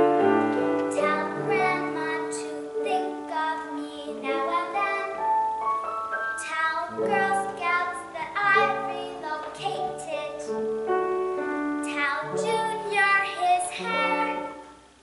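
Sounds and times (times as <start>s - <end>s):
piano accompaniment: 0.0s - 15.0s
girl singing: 0.7s - 5.6s, 6.2s - 10.6s, 11.4s - 14.8s.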